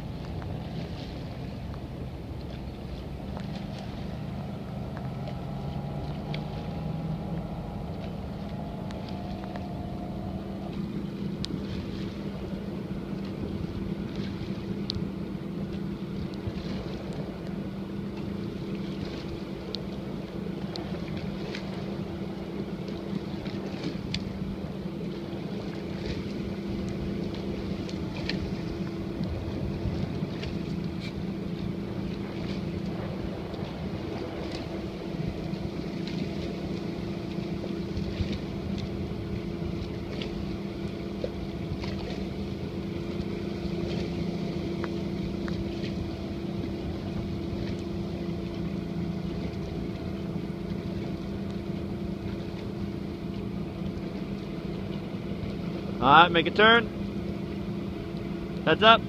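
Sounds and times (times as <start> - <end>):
wind buffeting microphone: 0.0 - 55.4
outboard motor humming: 0.0 - 59.0.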